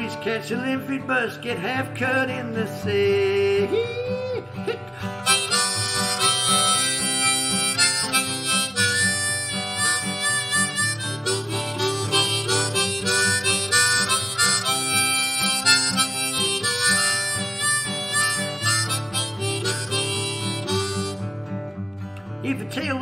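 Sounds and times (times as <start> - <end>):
guitar accompaniment: 0.0 - 23.0
blues harmonica solo: 3.7 - 21.9.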